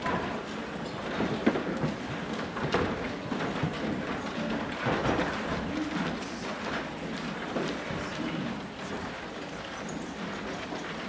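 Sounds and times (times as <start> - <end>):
footsteps on stage risers: 0.0 - 11.0
shuffling: 1.6 - 11.0.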